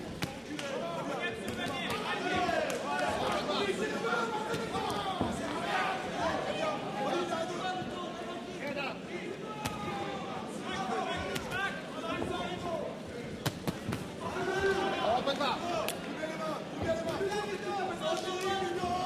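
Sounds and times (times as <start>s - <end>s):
crowd voices and shouts: 0.0s - 19.0s.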